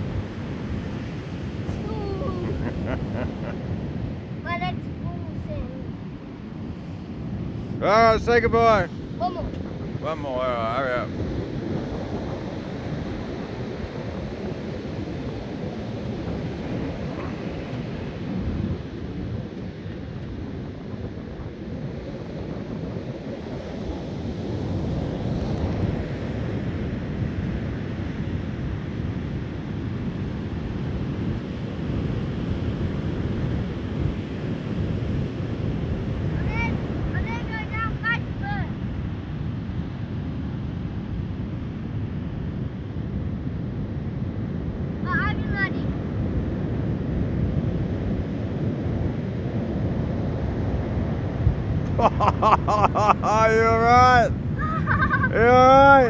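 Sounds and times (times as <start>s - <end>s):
ocean surf rushing: 0.0s - 56.0s
wind buffeting microphone: 0.0s - 56.0s.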